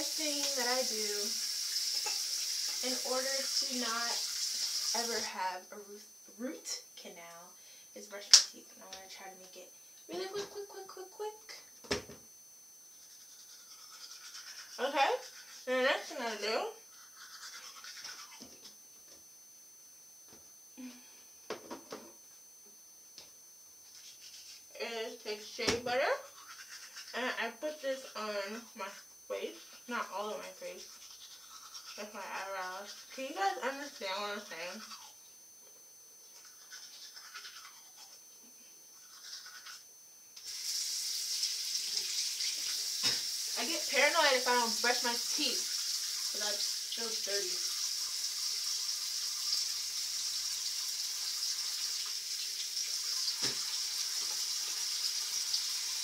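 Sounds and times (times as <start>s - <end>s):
running water from a tap: 0.0s - 5.3s, 40.4s - 56.0s
toothbrush scrubbing teeth: 0.0s - 5.3s, 12.9s - 18.7s, 23.9s - 24.7s, 26.2s - 27.3s, 29.6s - 35.2s, 36.3s - 38.4s, 39.0s - 56.0s.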